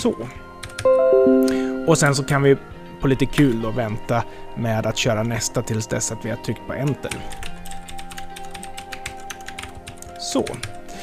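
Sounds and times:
background music with held notes: 0:00.0 - 0:11.0
computer keyboard typing: 0:00.6 - 0:00.8, 0:07.1 - 0:10.7.

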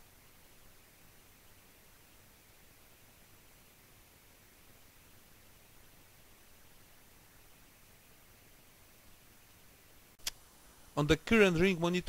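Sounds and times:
faint recording hiss: 0:00.0 - 0:12.0.

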